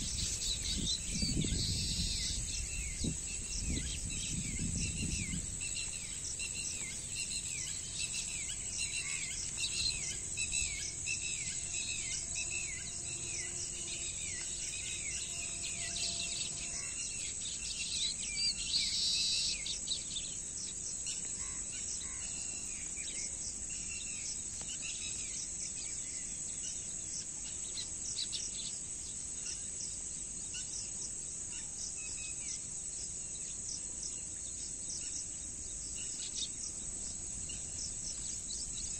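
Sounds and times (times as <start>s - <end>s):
high-pitched insect drone: 0.0s - 19.8s
small birds chirping: 0.0s - 38.9s.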